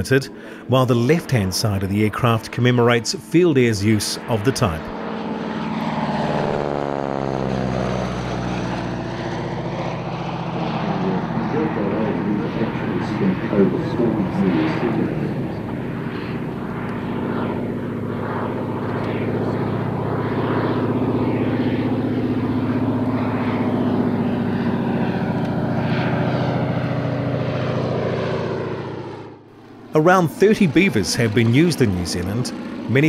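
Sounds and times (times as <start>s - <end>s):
propeller plane engine drone: 0.0s - 33.0s.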